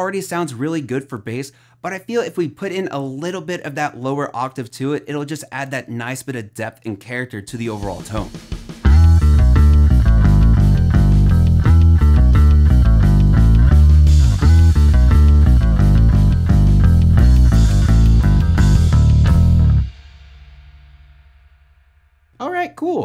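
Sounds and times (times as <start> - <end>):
electric bass riff: 8.3 - 20.2.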